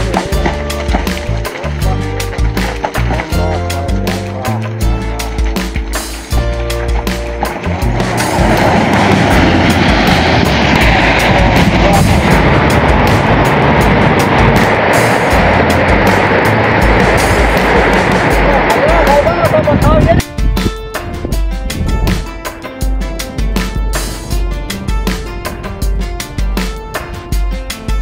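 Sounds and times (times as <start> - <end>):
music: 0.0 - 28.0
rockslide roar: 0.0 - 28.0.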